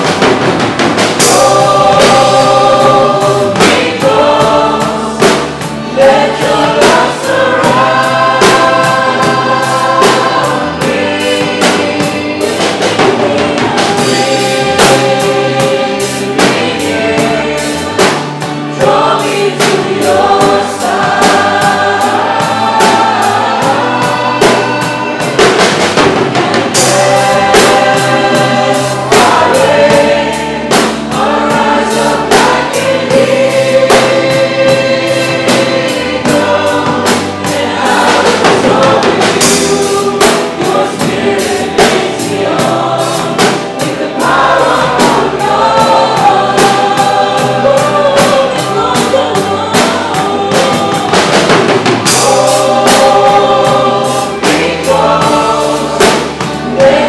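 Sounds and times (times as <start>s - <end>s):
drum kit steady beat: 0.0s - 57.0s
people singing: 0.0s - 57.0s.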